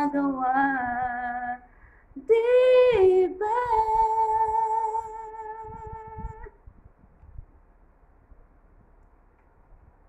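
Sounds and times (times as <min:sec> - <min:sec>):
woman singing a ballad: 0:00.0 - 0:06.6
singer's breath: 0:01.7 - 0:02.2.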